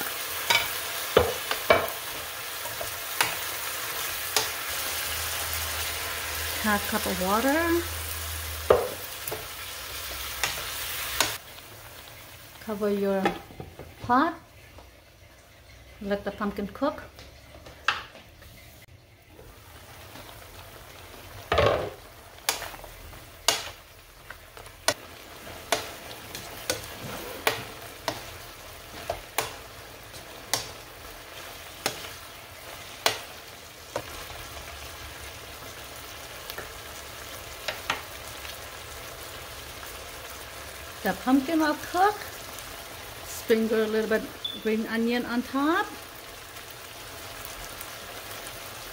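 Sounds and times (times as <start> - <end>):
food sizzling in a frying pan: 0.0 - 48.9
wooden spatula knocking on pan: 0.5 - 2.0, 8.6 - 9.5.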